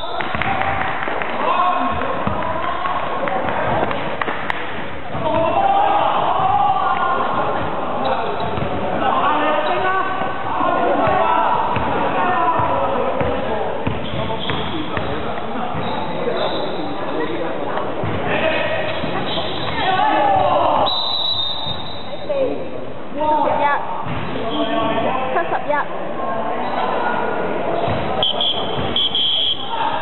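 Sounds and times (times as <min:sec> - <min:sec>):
people talking and calling out: 0:00.0 - 0:30.0.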